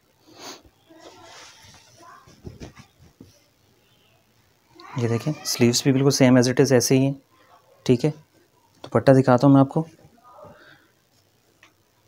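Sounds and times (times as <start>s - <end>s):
fabric rustling: 1.0s - 3.4s.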